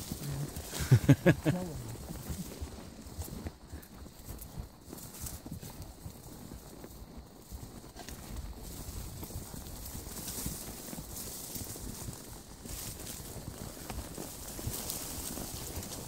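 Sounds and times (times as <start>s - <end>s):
hoof clicking on stone: 0.0s - 16.0s
horse hooves on rocky trail: 0.0s - 16.0s.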